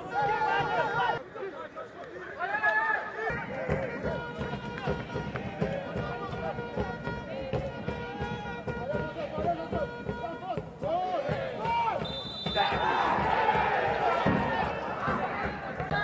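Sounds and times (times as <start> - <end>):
voices shouting: 0.0 - 6.9, 10.2 - 16.0
repeated knocks: 3.5 - 16.0.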